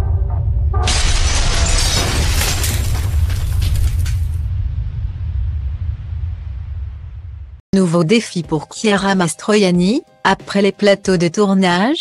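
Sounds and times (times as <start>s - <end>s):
shattering crash of debris: 0.9s - 4.5s
deep steady rumble: 2.8s - 7.6s
music: 7.8s - 12.0s.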